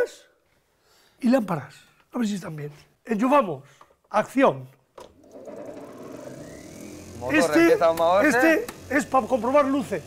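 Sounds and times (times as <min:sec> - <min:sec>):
motor whining up to speed: 0:05.2 - 0:10.0.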